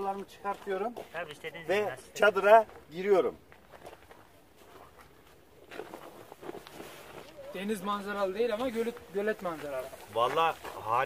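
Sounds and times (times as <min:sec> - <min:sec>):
tent fabric rustling: 0:05.7 - 0:11.0.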